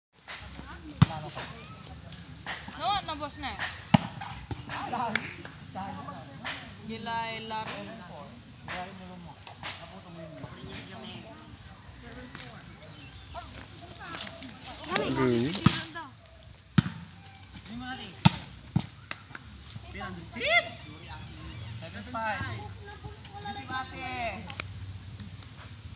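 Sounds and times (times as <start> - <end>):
hands slapping a volleyball: 3.5 - 5.6, 18.2 - 19.5, 24.4 - 25.5
players calling out: 19.4 - 24.5.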